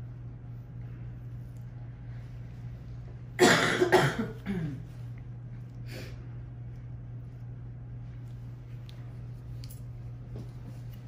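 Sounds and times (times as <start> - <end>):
person coughing: 3.4 - 4.9.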